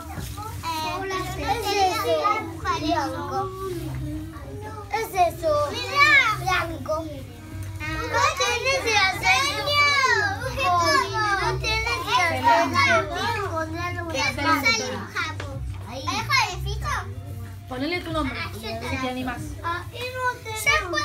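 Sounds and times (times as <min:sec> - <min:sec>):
children chattering and calling out: 0:00.0 - 0:21.0.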